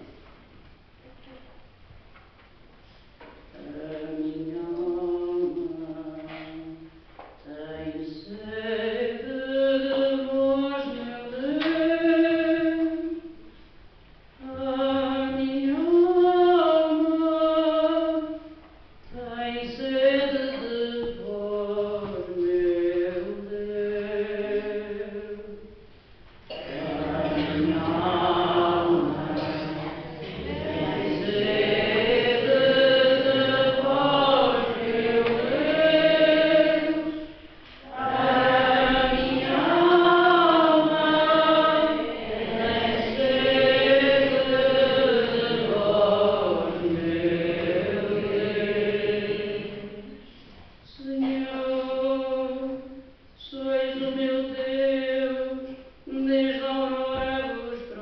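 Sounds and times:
slow sung chant: 0:03.1 - 0:58.0.

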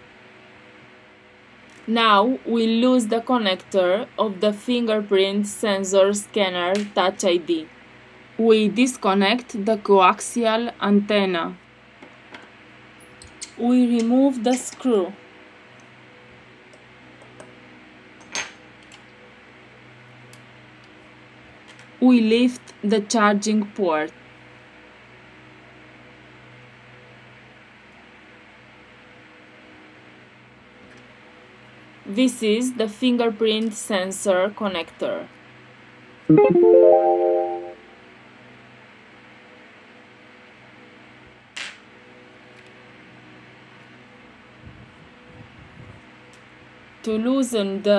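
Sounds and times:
strummed guitar chord: 0:36.3 - 0:37.8.

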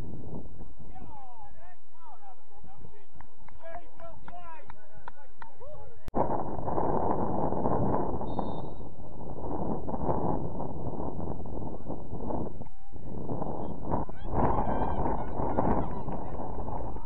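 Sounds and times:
wind on microphone: 0:00.0 - 0:01.4, 0:06.1 - 0:17.0.

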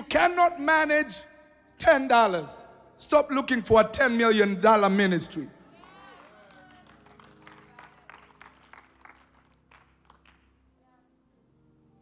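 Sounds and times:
people clapping: 0:05.7 - 0:10.6.

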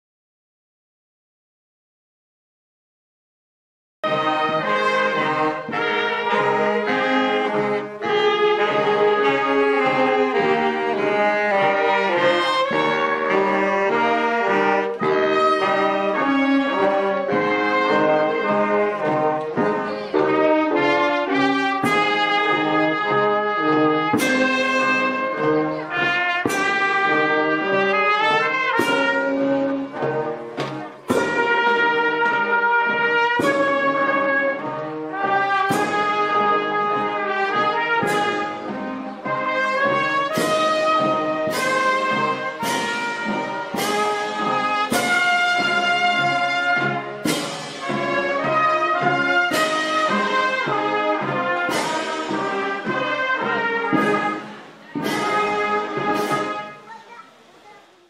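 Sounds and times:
brass band playing slow march: 0:04.0 - 0:57.4.

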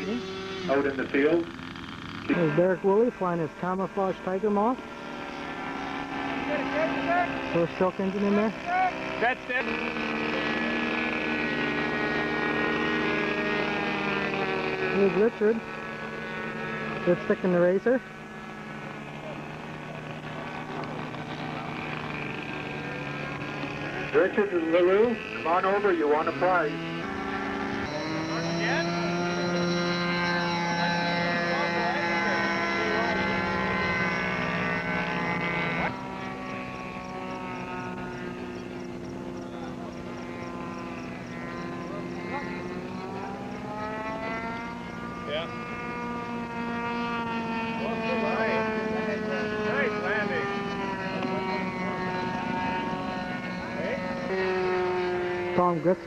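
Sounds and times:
model airplane engines buzzing: 0:00.0 - 0:56.0.

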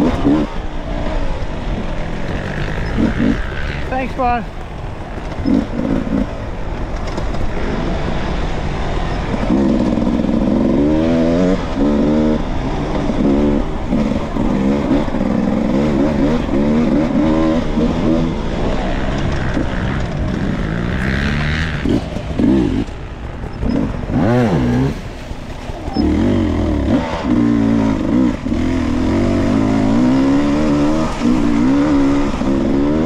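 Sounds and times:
dirt bike engine revving: 0:00.0 - 0:33.0.

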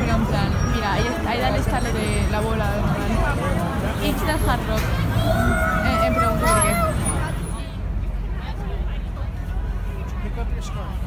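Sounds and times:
crowd babble: 0:00.0 - 0:11.0
steady low traffic: 0:00.0 - 0:11.0.

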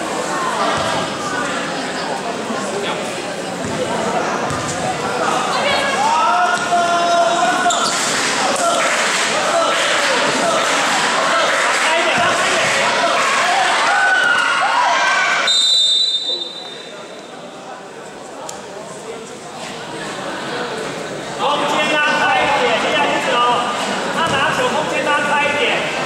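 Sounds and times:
basketball bouncing on court: 0:03.6 - 0:03.9, 0:04.5 - 0:04.8
shouts and cheers: 0:09.5 - 0:15.5.

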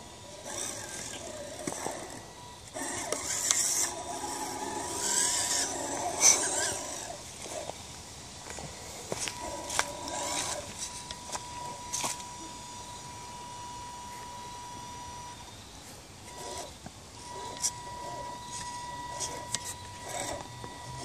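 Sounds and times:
electric motor whirring: 0:00.0 - 0:21.0.

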